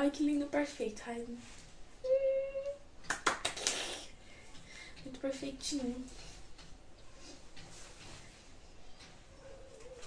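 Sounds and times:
woman humming: 2.0 - 2.8
breathy burst with rapid clicks: 3.4 - 5.1.

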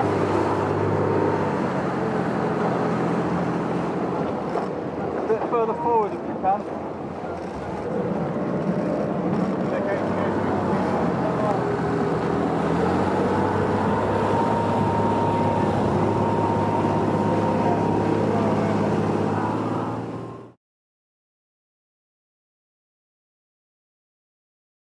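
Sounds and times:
wind and water rushing: 0.0 - 20.4
motorboat engine drone: 0.0 - 20.6
high-pitched whine: 13.4 - 20.4.

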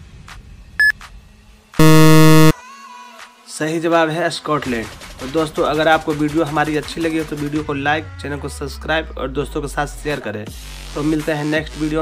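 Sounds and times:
loud low buzzer: 1.8 - 2.5
short high beep: 1.8 - 2.5.

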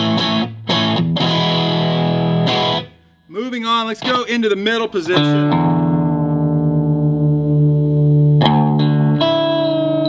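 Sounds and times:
electric guitar chord ringing: 5.1 - 10.0.

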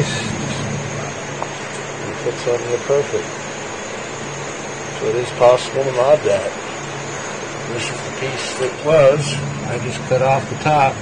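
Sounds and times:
low hum: 0.0 - 11.0
stove burner roaring: 0.0 - 11.0.

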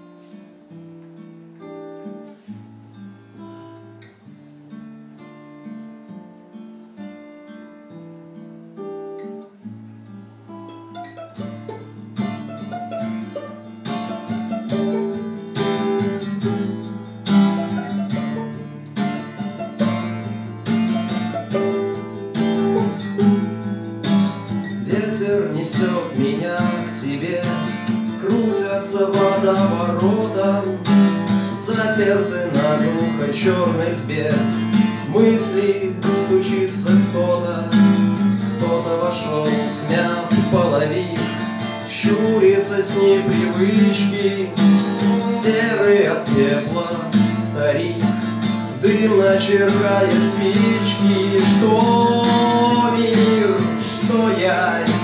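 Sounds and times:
acoustic guitar strumming: 0.0 - 55.0
violin with vibrato: 10.8 - 15.2.

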